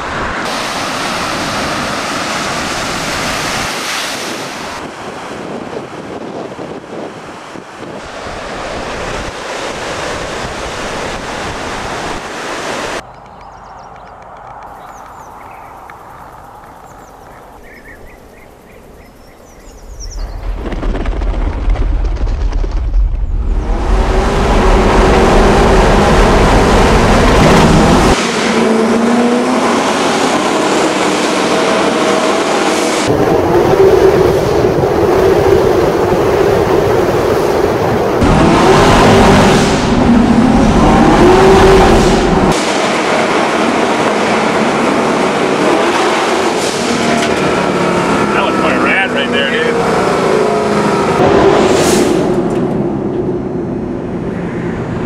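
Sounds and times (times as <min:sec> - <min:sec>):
car engine revving hard: 0:23.6 - 0:52.7.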